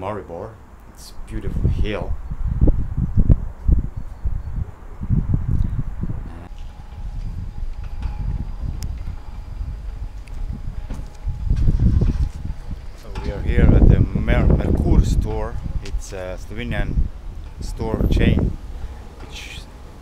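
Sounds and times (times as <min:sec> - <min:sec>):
wind buffeting microphone: 0:00.6 - 0:20.0.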